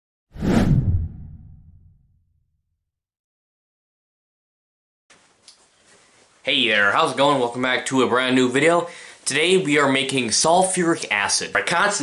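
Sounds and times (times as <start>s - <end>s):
whoosh sound effect: 0.4s - 2.0s.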